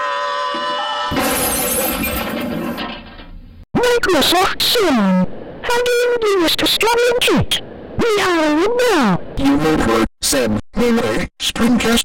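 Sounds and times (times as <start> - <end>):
glass shattering crash: 1.1 - 3.2.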